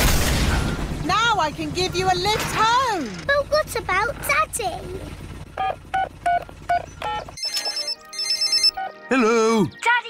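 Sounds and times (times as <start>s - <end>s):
low helicopter engine hum: 0.8s - 7.8s
phone keypad beeps: 5.6s - 9.0s
phone ringing with pulsing ring: 5.6s - 9.0s.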